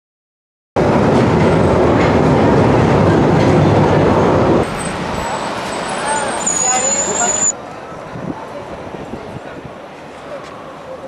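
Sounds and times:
street background noise: 0:00.8 - 0:11.0
underground train at platform: 0:00.8 - 0:11.0
faint voices: 0:01.9 - 0:11.0.

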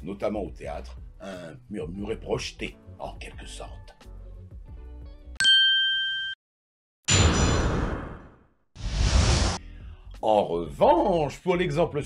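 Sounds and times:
faint background music: 0:00.0 - 0:05.2, 0:09.6 - 0:12.0
bell-like ding: 0:05.4 - 0:06.4, 0:07.1 - 0:07.9.

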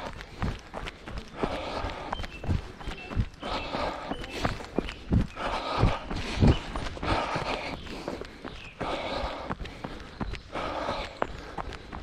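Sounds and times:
hard breathing: 0:00.0 - 0:12.0.

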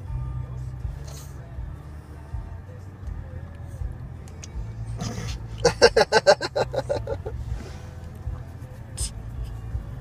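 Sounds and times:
car engine hum inside cabin: 0:00.0 - 0:10.0
person giggling: 0:05.1 - 0:07.4
person breathing: 0:07.4 - 0:08.1.

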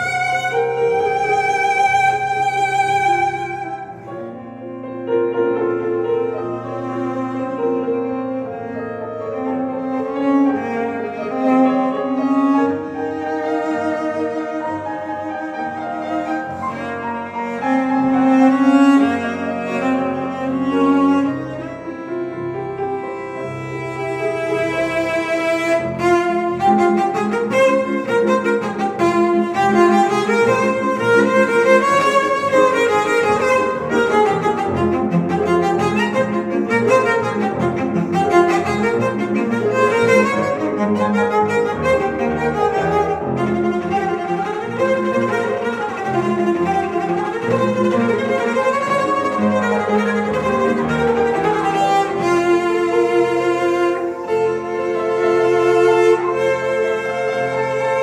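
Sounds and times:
bowed cello: 0:00.0 - 0:58.0
grand piano playing: 0:00.0 - 0:58.0.

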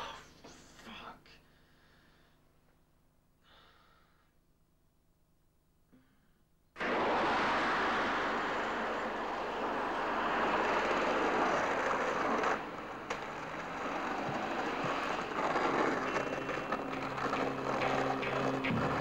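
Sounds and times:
skateboard wheels rolling on pavement: 0:06.8 - 0:19.0
music: 0:16.0 - 0:19.0.

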